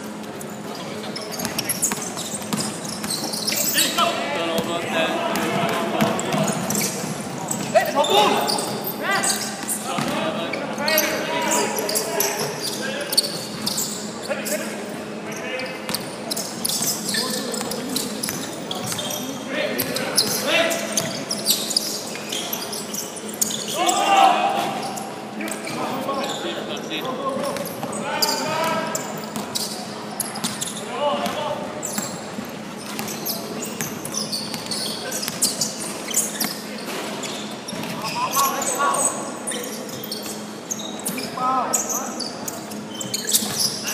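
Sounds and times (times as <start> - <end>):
basketball bouncing on wooden court: 1.4 - 3.3, 5.3 - 6.8, 9.6 - 10.2
players shouting: 23.7 - 25.1.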